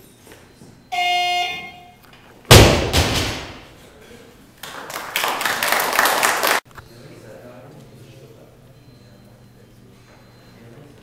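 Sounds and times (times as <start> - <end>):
short electronic beep: 0.8 - 2.1
barbell crashing onto platform: 2.5 - 3.7
spectators clapping: 4.6 - 6.6.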